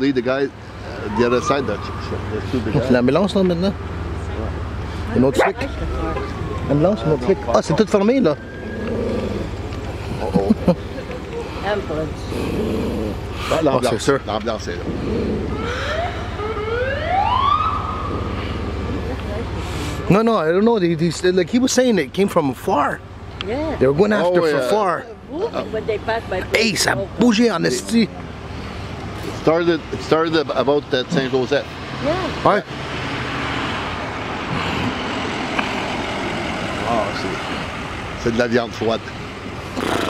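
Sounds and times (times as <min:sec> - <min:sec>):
vehicle driving by: 0:00.0 - 0:40.0
siren wailing: 0:00.8 - 0:03.0, 0:05.4 - 0:09.6, 0:15.2 - 0:19.1.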